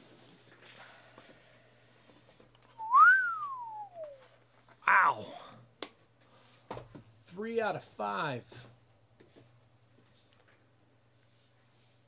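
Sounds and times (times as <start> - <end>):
person whistling: 2.8 - 4.2.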